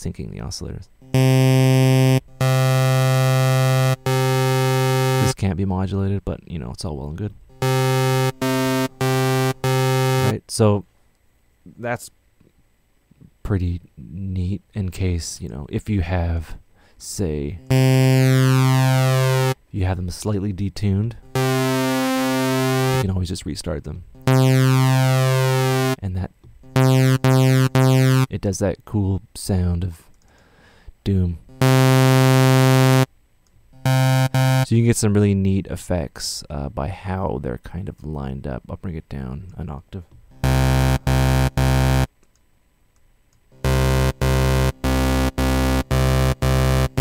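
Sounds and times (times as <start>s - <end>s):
sawtooth synthesizer notes: 1.0s - 5.4s, 7.5s - 10.4s, 17.5s - 19.6s, 21.2s - 23.2s, 24.1s - 26.0s, 26.6s - 28.3s, 31.5s - 33.1s, 33.8s - 34.7s, 40.3s - 42.1s, 43.6s - 47.0s
person speaking: 2.4s - 10.9s, 13.2s - 30.1s.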